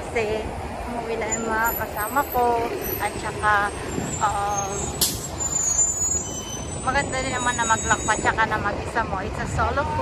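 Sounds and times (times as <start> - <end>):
bus engine: 0.0 - 10.0
traffic noise: 0.0 - 10.0.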